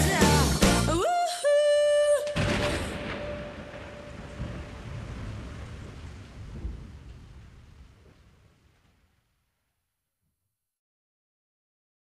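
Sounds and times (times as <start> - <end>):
thunder rumble: 2.4 - 9.6
rain hiss: 2.6 - 9.2.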